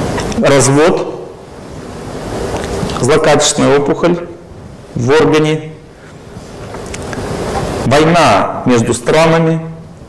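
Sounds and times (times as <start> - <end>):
hiss-like background rush: 0.0 - 10.0.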